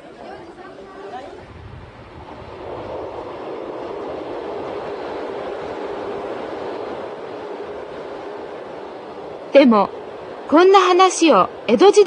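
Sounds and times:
train rushing rumble: 0.0 - 12.0.

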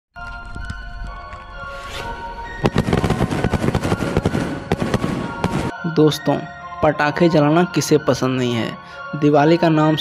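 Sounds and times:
firework fizzing: 1.9 - 5.7
firework cracks and pops: 2.6 - 5.7.

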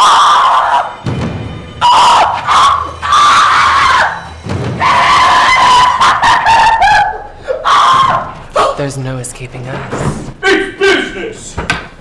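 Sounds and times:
young man screaming: 1.8 - 8.3.

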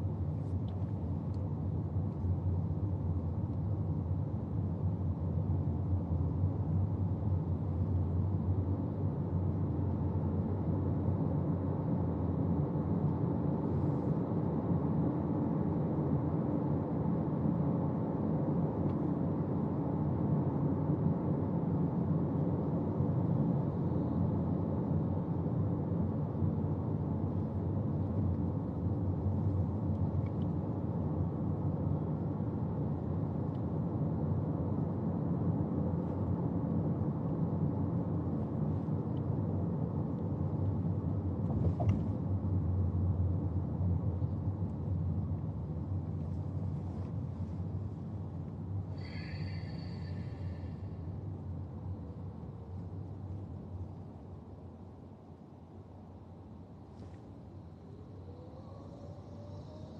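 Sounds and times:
car cabin road and engine noise: 35.4 - 49.0.

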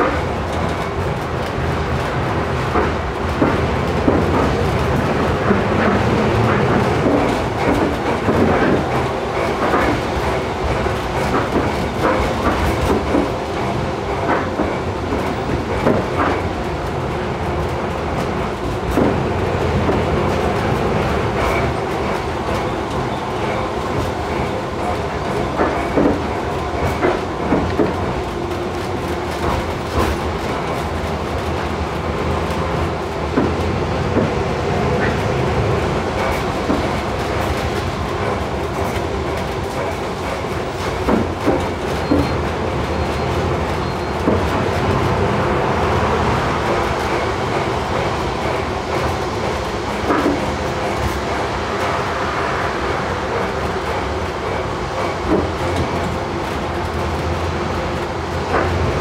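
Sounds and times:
wheels clicking over rail joints: 0.0 - 52.0, 52.9 - 59.0
tram motor and wheels rumbling: 0.0 - 59.0.

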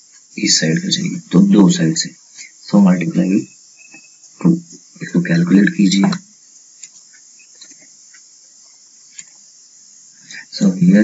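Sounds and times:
faint high-pitched hiss: 0.0 - 11.0.

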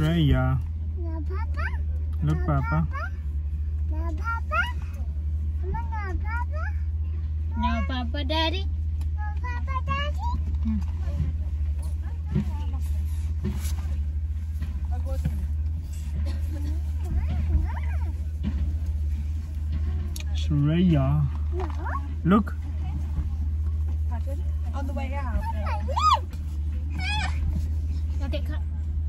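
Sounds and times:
car engine idling: 0.0 - 29.0
steady low hum: 0.0 - 29.0
toddler whining cries: 26.9 - 27.5.

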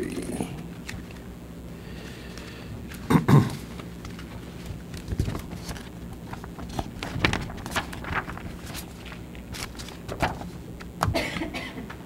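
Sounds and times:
low steady hum: 0.0 - 12.0
papers rustling: 2.0 - 12.0.

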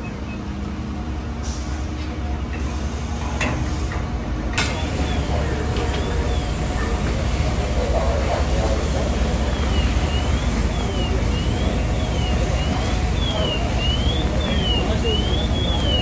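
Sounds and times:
fire engines rumbling: 0.0 - 16.0.

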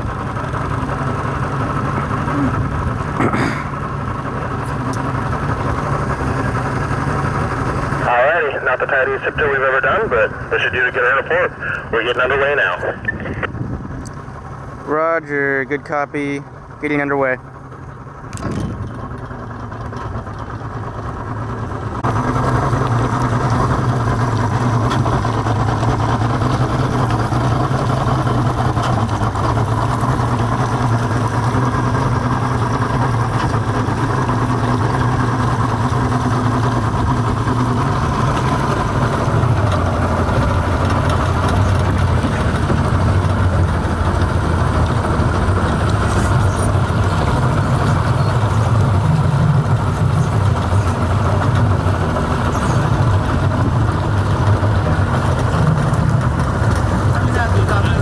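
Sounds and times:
boat engine running: 0.0 - 58.0.

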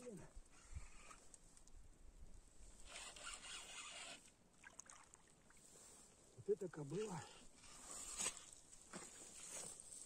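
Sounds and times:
faint rustling scrape: 5.6 - 6.2, 6.9 - 10.0.

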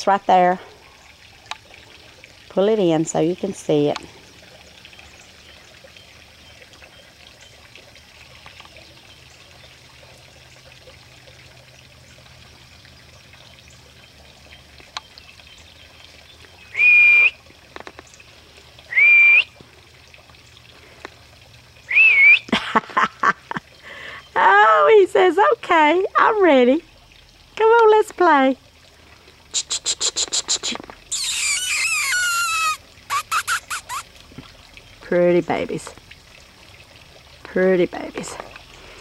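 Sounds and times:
person whistling high notes: 16.8 - 17.4, 18.9 - 19.5.

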